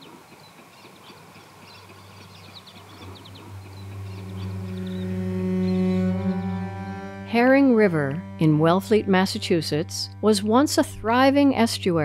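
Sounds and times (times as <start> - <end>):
birds chirping: 0.0 - 9.8
low hum: 2.3 - 12.0
sustained musical drone: 2.4 - 12.0.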